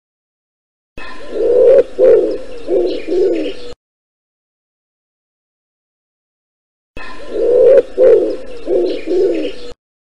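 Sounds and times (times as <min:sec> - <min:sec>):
pigeon cooing: 0:01.0 - 0:03.8, 0:07.0 - 0:09.8.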